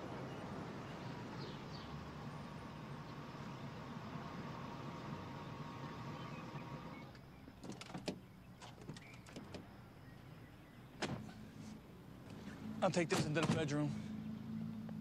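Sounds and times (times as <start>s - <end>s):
car engine running: 0.8s - 7.4s
car door thunk: 13.1s - 13.7s.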